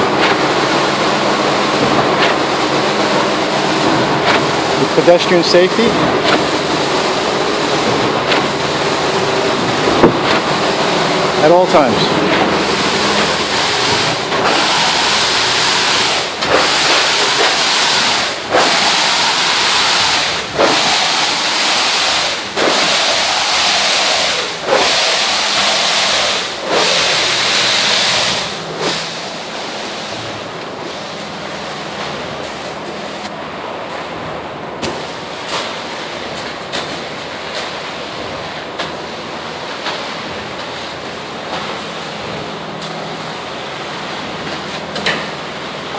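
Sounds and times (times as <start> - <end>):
concrete pump rushing: 0.0 - 45.9.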